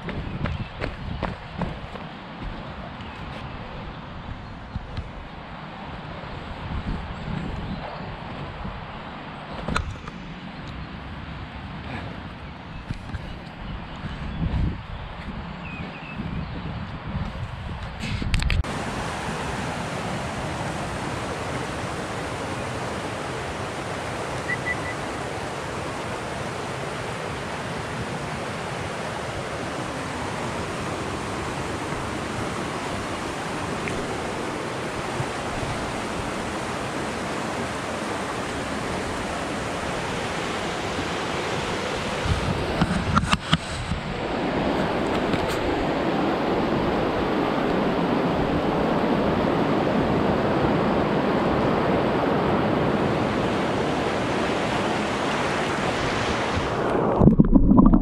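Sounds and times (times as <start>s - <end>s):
water rushing over rocks: 18.6s - 43.6s, 53.5s - 58.0s.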